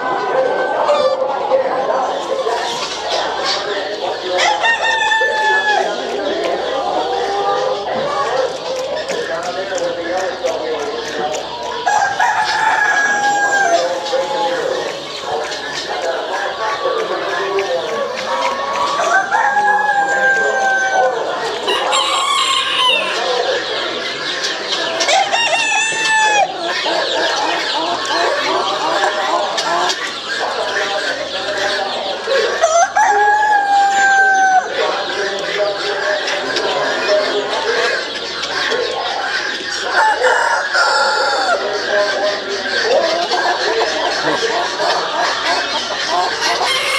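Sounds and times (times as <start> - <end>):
chickens clucking: 0.0 - 46.9
murmur of voices: 0.0 - 46.9
rooster crowing: 11.9 - 13.9, 19.0 - 23.2, 32.6 - 34.7, 40.0 - 41.6.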